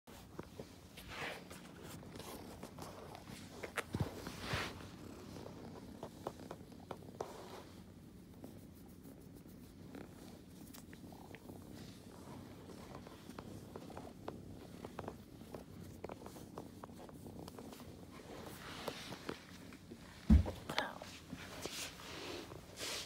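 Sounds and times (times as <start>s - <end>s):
kitten purring: 0.1s - 23.0s.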